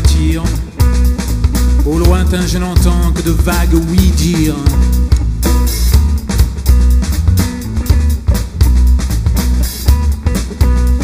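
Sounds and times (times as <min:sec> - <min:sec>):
electric guitar: 0:00.0 - 0:11.0
heavy bass line: 0:00.0 - 0:11.0
steady drum beat: 0:00.0 - 0:11.0.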